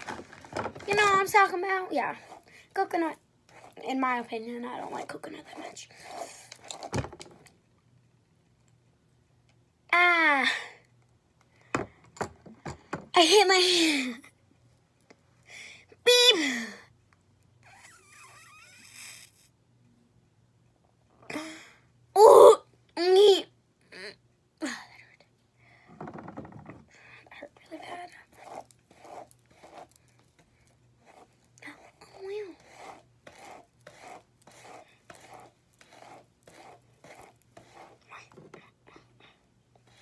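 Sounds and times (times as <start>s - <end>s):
girl's wordless vocal noises: 21.3s - 25.1s
girl yelping: 22.2s - 23.4s
brush strokes through hair: 27.9s - 30.4s, 31.1s - 38.1s.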